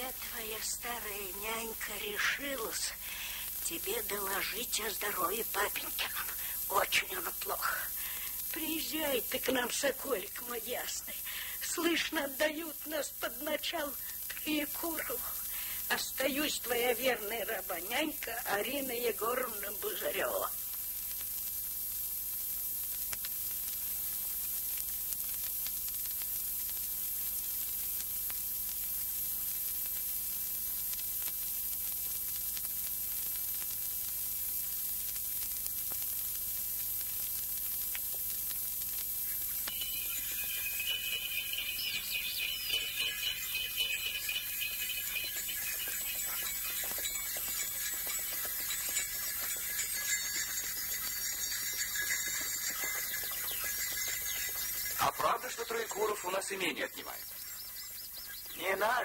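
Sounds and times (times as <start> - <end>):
film soundtrack hiss: 0.0 - 59.0
high chirping birdsong: 39.3 - 59.0.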